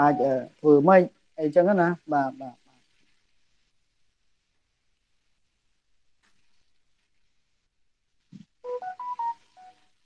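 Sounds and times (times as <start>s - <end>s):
electronic notification beeps: 0.0s - 0.3s, 8.6s - 9.8s.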